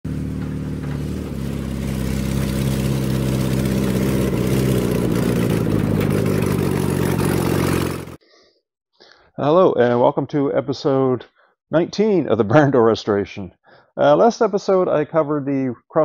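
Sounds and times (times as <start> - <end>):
van engine running: 0.0 - 8.2.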